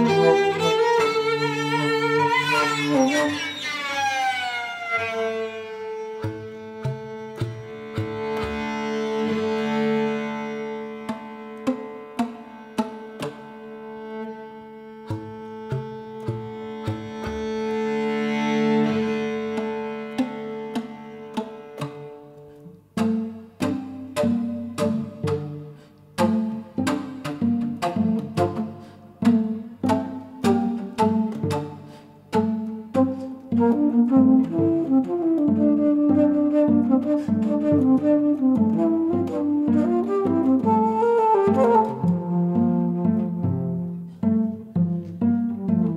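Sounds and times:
cello plucked pizzicato: 0.0s - 45.9s.

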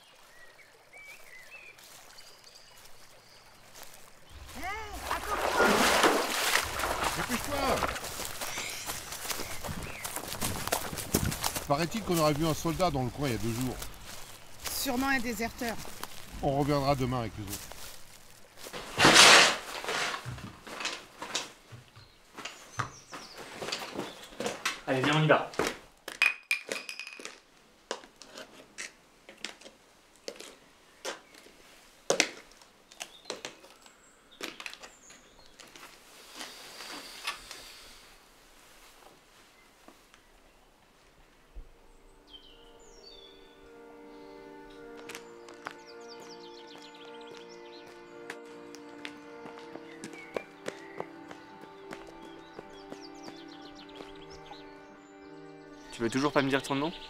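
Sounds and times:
footsteps on floor: 5.9s - 12.4s, 17.6s - 25.8s, 44.9s - 54.6s
soft sustained background music: 41.4s - 57.0s.

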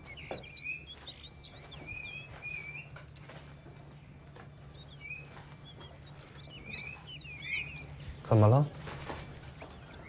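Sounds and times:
songbirds chirping and whistling: 0.0s - 10.0s.

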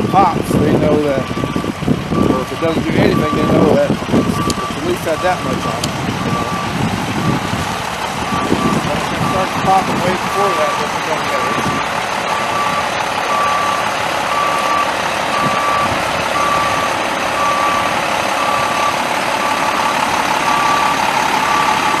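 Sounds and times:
truck backup alarm beeping: 0.0s - 22.0s
vehicle noise: 0.0s - 22.0s.

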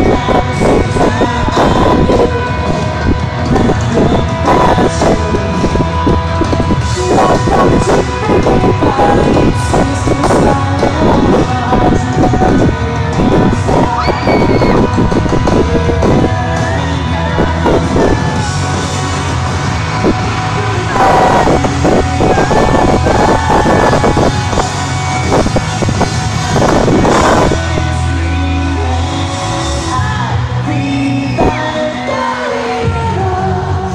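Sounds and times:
live pop-rock band: 0.0s - 33.9s
crowd yelling: 13.7s - 15.8s, 16.6s - 27.9s.

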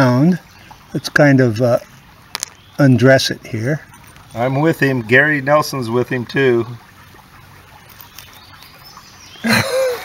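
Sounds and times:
bird chirps: 1.9s - 3.0s, 7.0s - 10.0s
stone lifted off pebbles clicks: 2.3s - 2.6s.

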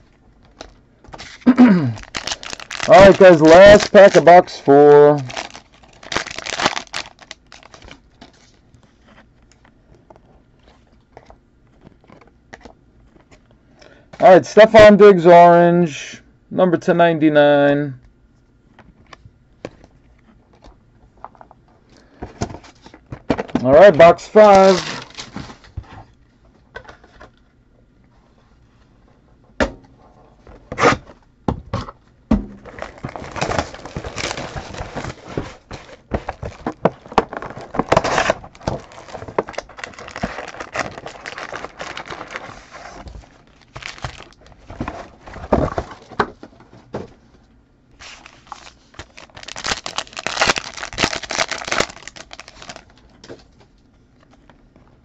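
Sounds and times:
plastic wrap crinkling and tearing: 1.3s - 9.1s, 24.0s - 25.7s, 32.6s - 46.0s, 48.0s - 53.2s.

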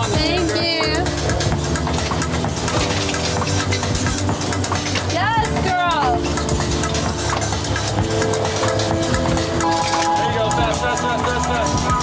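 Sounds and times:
background music with long notes: 0.0s - 12.0s.

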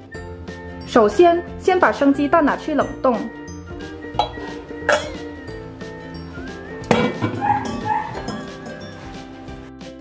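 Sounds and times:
light background music: 0.0s - 10.0s
eggs clinking against metal pot: 4.1s - 5.3s, 6.8s - 9.0s
pot set down on shelf: 4.2s - 5.2s, 6.8s - 9.0s.

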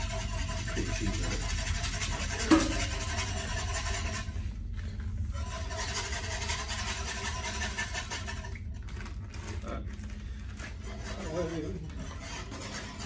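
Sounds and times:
steady low hum: 0.0s - 13.0s
whisk scraping in pot: 0.0s - 13.0s.

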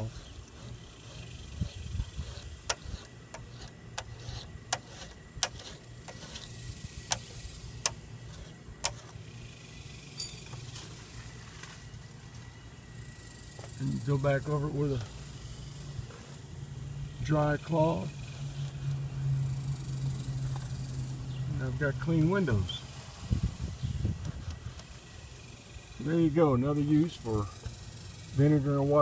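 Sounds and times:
razor scraper clicking on glass: 0.0s - 9.1s
steady low hum: 0.0s - 29.0s
brief jangle: 10.2s - 10.6s.

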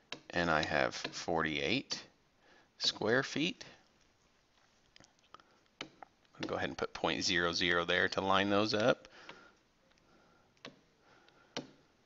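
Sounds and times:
stylus tapping on a screen: 5.7s - 6.6s, 11.5s - 11.8s.

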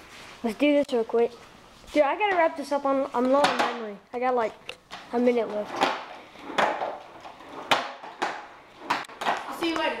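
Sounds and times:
skateboard clacking on concrete: 3.2s - 3.9s, 4.8s - 10.0s
skateboard wheels rolling: 4.9s - 10.0s.

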